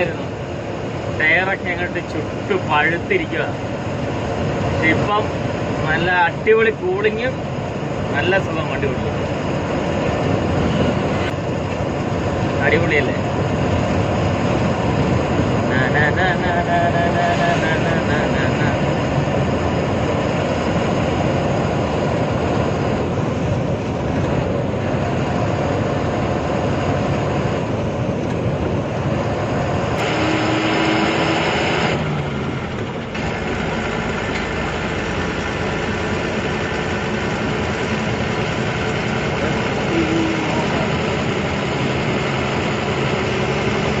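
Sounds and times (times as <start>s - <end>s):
road noise: 0.0s - 44.0s
truck engine drone: 0.0s - 44.0s.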